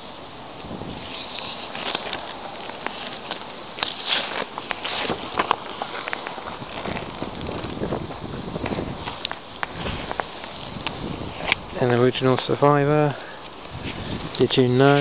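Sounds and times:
magazine pages rustling: 0:00.9 - 0:15.0.

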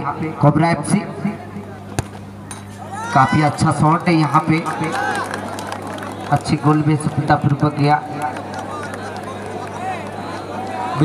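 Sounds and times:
low steady hum: 0:00.0 - 0:11.0
ball kicked thump: 0:02.0 - 0:02.2.

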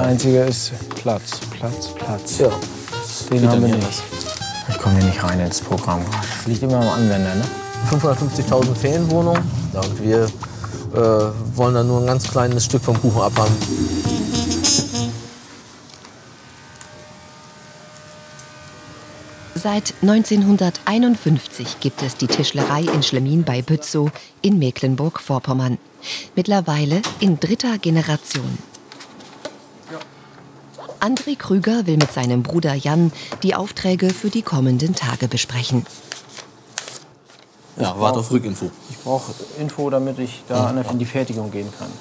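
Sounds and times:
background hum and hiss: 0:00.0 - 0:42.0
paper rustling: 0:35.8 - 0:37.6.

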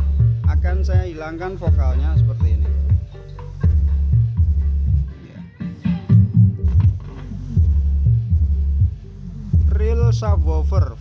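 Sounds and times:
deep bass notes: 0:00.0 - 0:11.0.

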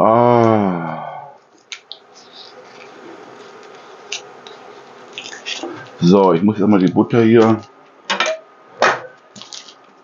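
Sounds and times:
butter wrapper rustling: 0:01.4 - 0:06.2, 0:09.2 - 0:10.0.

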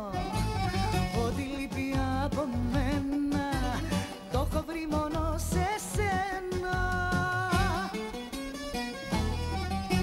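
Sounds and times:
woman singing with vibrato: 0:00.0 - 0:08.1
plucked-string accompaniment with bass: 0:00.0 - 0:10.0.

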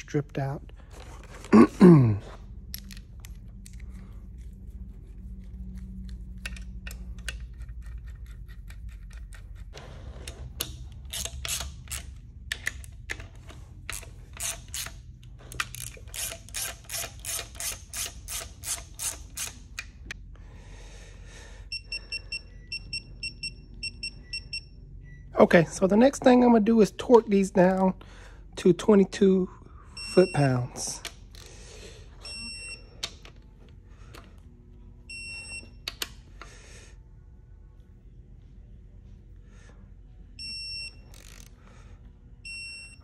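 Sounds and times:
hand ratchet clicking: 0:10.6 - 0:20.0, 0:41.1 - 0:41.5.

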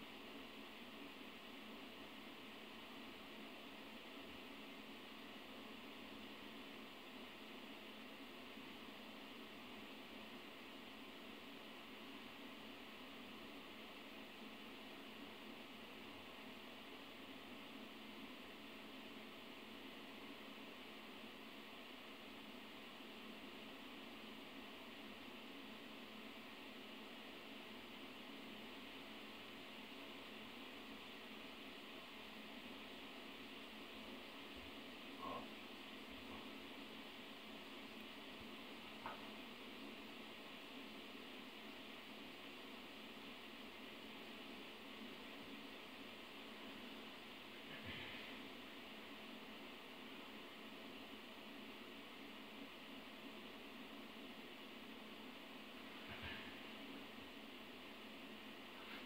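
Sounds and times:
steady recording hiss: 0:00.0 - 0:59.0.

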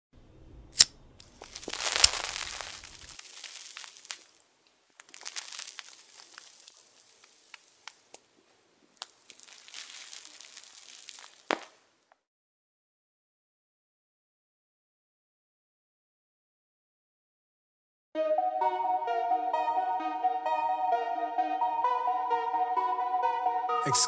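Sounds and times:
crackles: 0:00.6 - 0:12.2
sharp pop: 0:00.8 - 0:03.0
burning joint hissing: 0:00.8 - 0:04.4, 0:05.0 - 0:08.2, 0:09.0 - 0:11.5.

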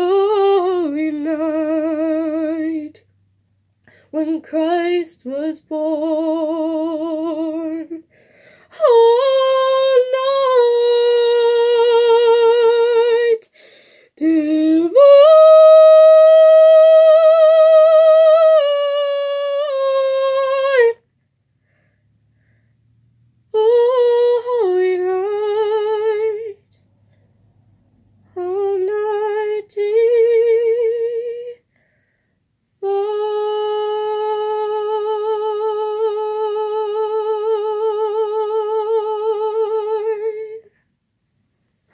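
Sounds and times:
woman singing unaccompanied: 0:00.0 - 0:03.1, 0:04.1 - 0:21.1, 0:23.5 - 0:26.8, 0:28.2 - 0:31.7, 0:32.8 - 0:40.8.

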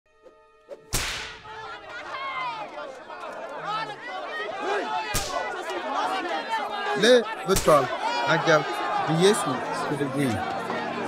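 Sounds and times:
whip crack: 0:00.9 - 0:01.5, 0:05.1 - 0:05.4
crowd shouting: 0:01.2 - 0:11.0.

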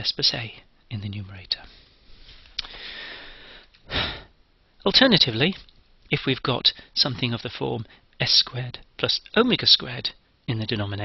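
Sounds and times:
short loud breath: 0:01.7 - 0:04.3
soft hissing inhalation: 0:01.7 - 0:04.3
mouth click: 0:02.6 - 0:02.8.

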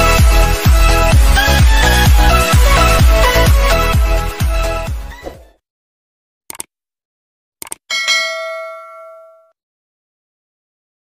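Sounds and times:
bell-like ding: 0:07.9 - 0:09.6.

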